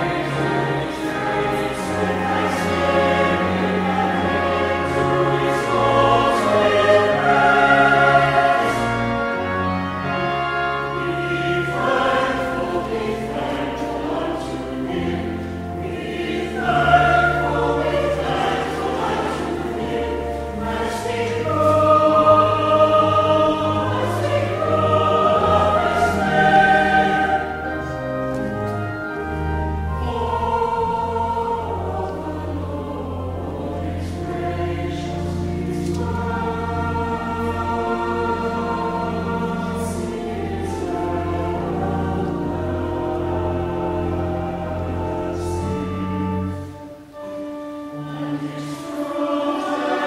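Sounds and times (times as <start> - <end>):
choir singing in harmony: 0.0 - 50.0
organ accompaniment: 0.0 - 50.0.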